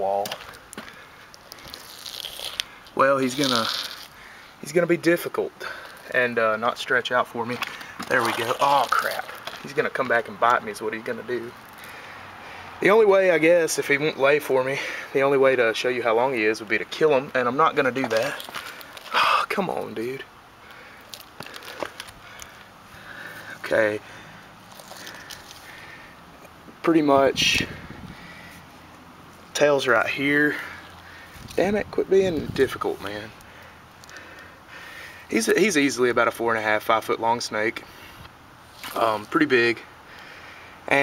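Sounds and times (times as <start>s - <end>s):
soft rustling handling noise: 0.0s - 12.0s, 15.8s - 27.2s, 28.4s - 34.5s, 37.5s - 40.0s
faint rustle: 17.3s - 19.3s, 20.0s - 26.6s.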